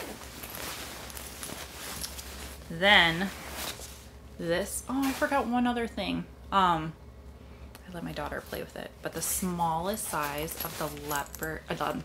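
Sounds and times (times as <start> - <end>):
rustling inside a bag: 0.0 - 4.2, 9.9 - 12.0.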